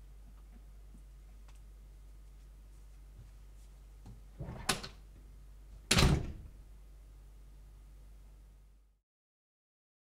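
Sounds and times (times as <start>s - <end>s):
door slamming: 5.9s - 6.5s.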